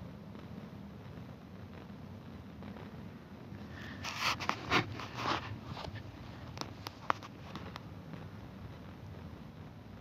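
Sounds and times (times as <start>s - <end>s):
low steady background: 0.0s - 10.0s
short rustling scrapes: 3.8s - 6.2s.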